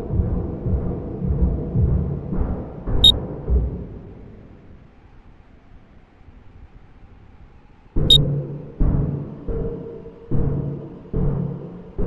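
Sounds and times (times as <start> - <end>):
deep drum-like hits: 0.0 - 4.2
low rumbling music: 0.0 - 6.3, 7.1 - 12.0.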